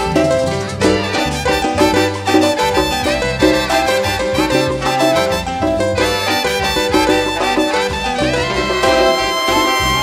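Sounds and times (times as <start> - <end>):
bass line: 0.0 - 10.0
marimba: 0.0 - 10.0
saxophones: 0.8 - 10.0.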